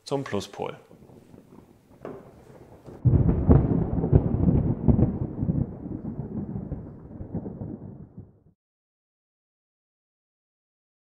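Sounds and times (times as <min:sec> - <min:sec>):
thunder-like rumble with crackling: 0:00.6 - 0:08.6.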